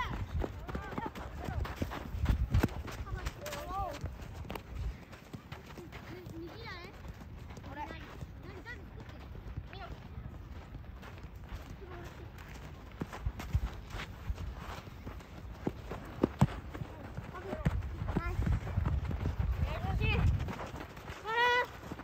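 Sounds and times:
running footsteps on gravelly dirt: 0.0 - 22.0.

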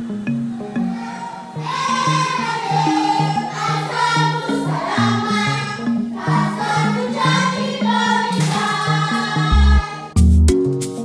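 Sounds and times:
choir singing: 0.7 - 10.2.

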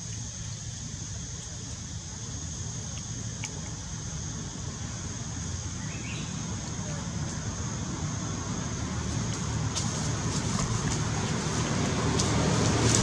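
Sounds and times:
low rumbling noise: 7.9 - 13.0.

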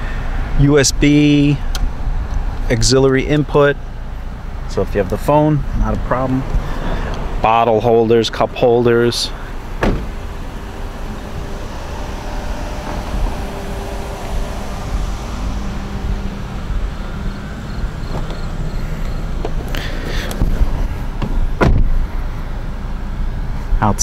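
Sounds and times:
wind rumble: 9.0 - 23.6
sharp thump: 9.8 - 10.2, 21.2 - 22.0
microphone handling: 19.4 - 22.1.

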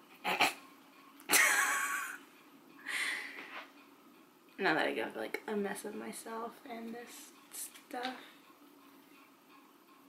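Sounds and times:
woman laughing breathily: 2.8 - 3.4.

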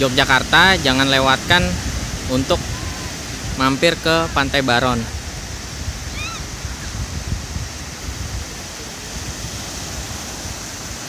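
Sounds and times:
surf breaking on beach: 0.0 - 11.0
distant voice calling out: 2.5 - 3.2.

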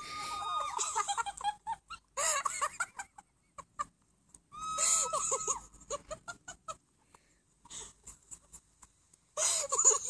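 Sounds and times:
woman cackling laughter: 0.4 - 3.9, 4.6 - 6.8, 9.4 - 10.0.

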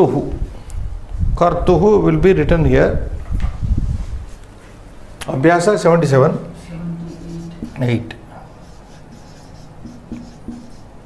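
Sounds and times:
marker scratching on whiteboard: 6.8 - 11.0.

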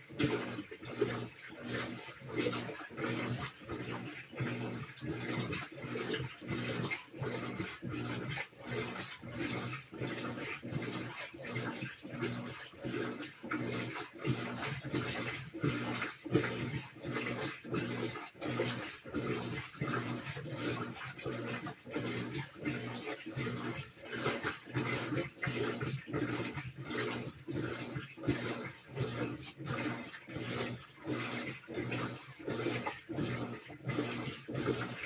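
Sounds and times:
washing machine water swishing: 0.0 - 35.0.

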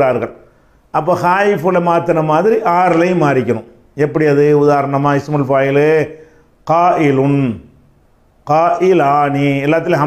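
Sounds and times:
man chanting: 8.5 - 10.0.

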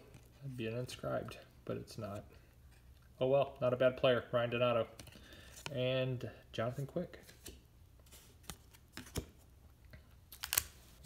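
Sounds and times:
cards clicking and tapping in hand: 8.4 - 9.4.

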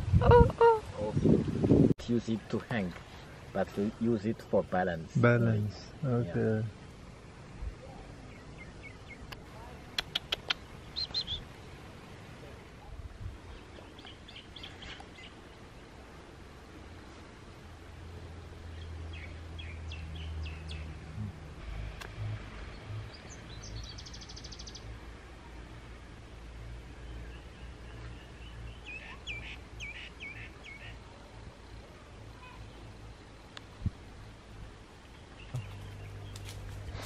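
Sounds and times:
low outdoor rumble: 0.0 - 37.0
small bird chirping: 8.3 - 11.5, 22.6 - 25.0, 35.1 - 36.6.

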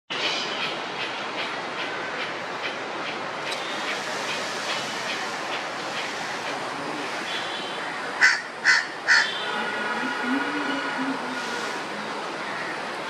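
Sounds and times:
steady background noise: 0.1 - 13.0.

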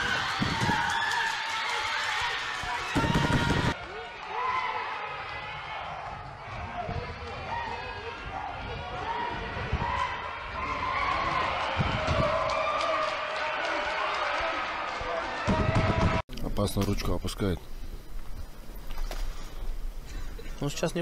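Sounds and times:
fight crowd: 0.0 - 16.2.

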